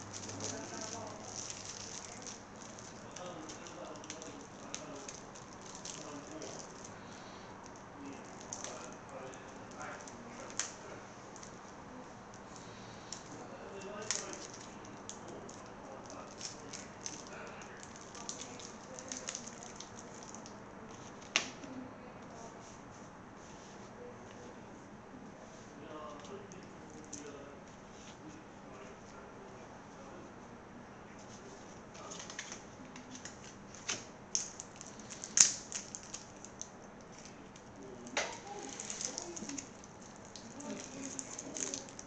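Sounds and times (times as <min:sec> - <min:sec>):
plastic wrap crinkling: 0:00.0 - 0:11.7, 0:12.3 - 0:21.6, 0:31.9 - 0:42.0.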